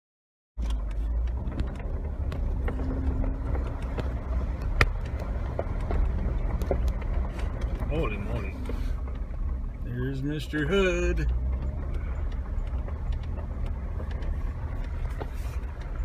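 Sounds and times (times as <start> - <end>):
knocks and rattles from bumps: 0.6 - 9.8, 11.2 - 16.0
car driving on gravel: 0.6 - 16.0.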